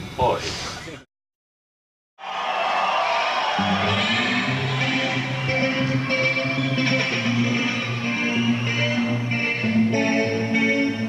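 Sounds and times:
amplified guitar: 3.5 - 11.0.

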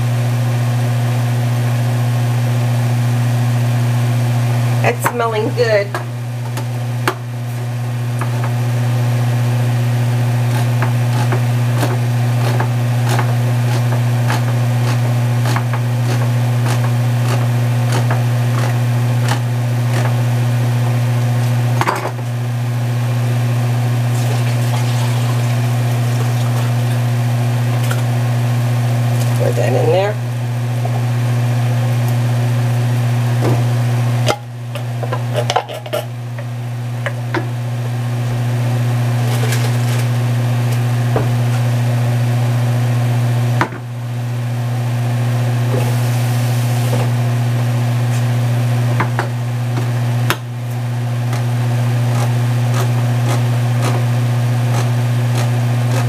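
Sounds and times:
steady low hum: 0.0 - 56.0.

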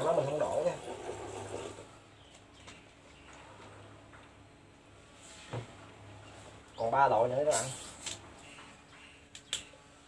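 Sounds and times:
cola pouring and splashing: 0.0 - 1.9.

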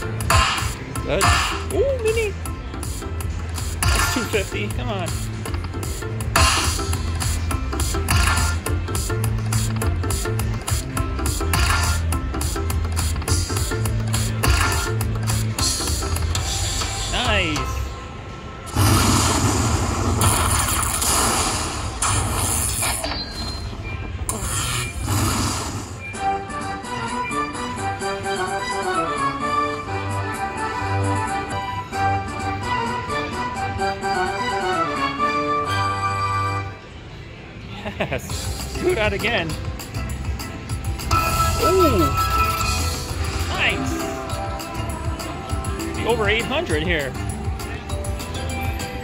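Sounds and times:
melodic slot machine tune: 0.0 - 18.0, 26.0 - 36.8, 38.3 - 49.0
loud noisy effect bursts: 18.6 - 23.2, 24.2 - 26.1.

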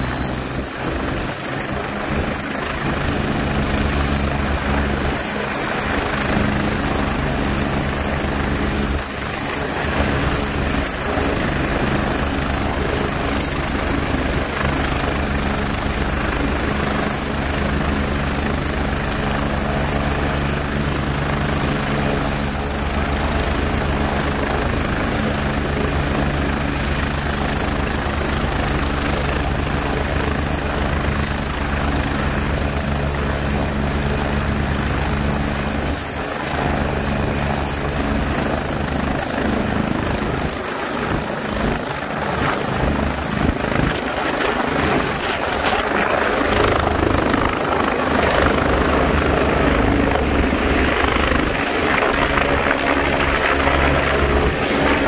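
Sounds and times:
helicopter turbine whine and whistle: 0.0 - 55.0.

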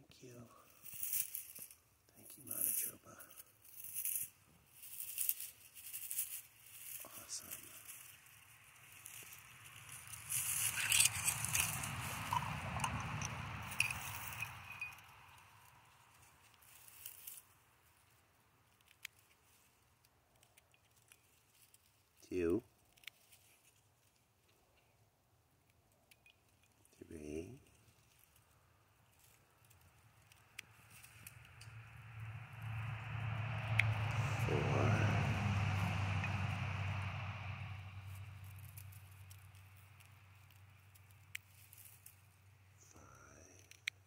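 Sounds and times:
pine needles rustling and crackling: 0.5 - 25.0, 27.6 - 44.0.

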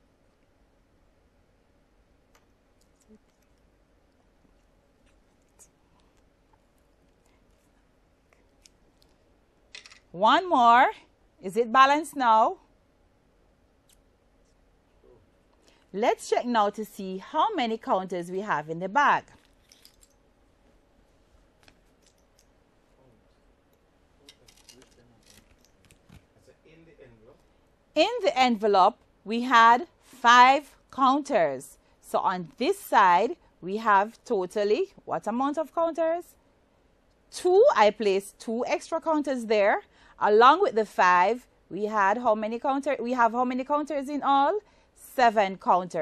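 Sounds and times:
paper envelope rustling: 24.3 - 26.3.

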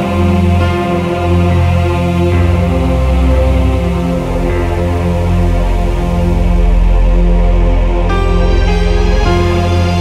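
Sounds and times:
dark electro-industrial music: 0.0 - 10.0.

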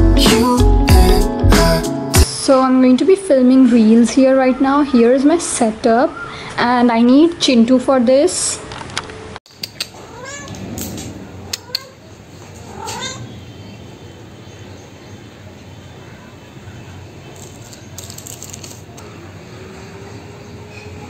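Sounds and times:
cat meowing: 10.0 - 13.4.

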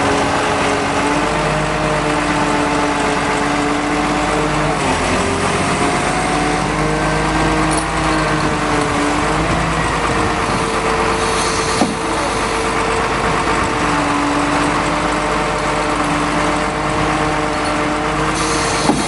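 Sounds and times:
engine running at low speed: 0.0 - 19.0.

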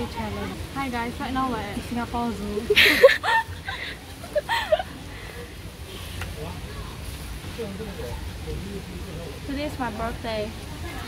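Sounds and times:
low background noise: 0.0 - 11.0
young woman laughing: 2.7 - 5.0.

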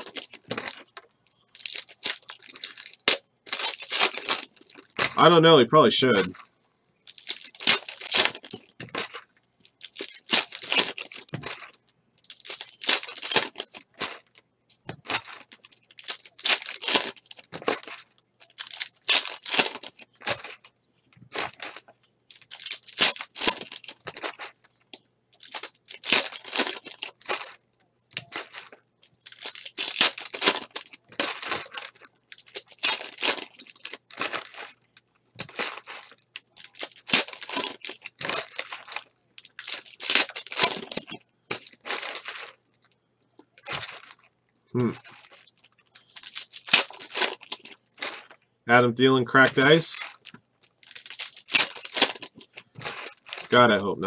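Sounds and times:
plastic wrappers crinkling: 0.0 - 5.4, 6.0 - 53.9.

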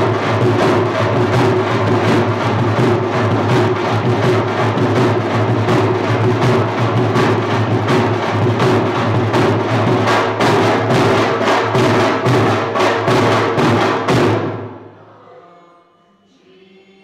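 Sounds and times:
barrel drums played with sticks: 0.0 - 14.8.

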